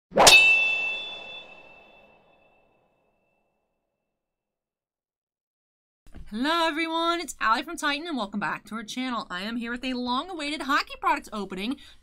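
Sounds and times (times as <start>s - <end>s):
metallic clang ringing: 0.2s - 2.4s.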